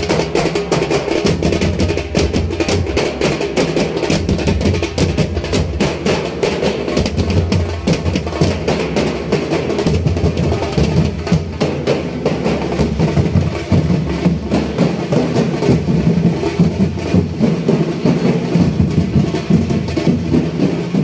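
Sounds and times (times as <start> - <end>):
fast dense drumming: 0.0 - 21.0.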